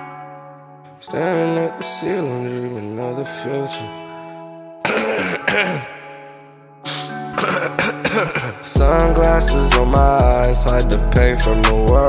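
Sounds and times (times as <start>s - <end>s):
held synth chord: 4.2s - 12.0s
person coughing: 4.9s - 6.0s, 6.9s - 8.8s
hip hop beat: 6.8s - 12.0s.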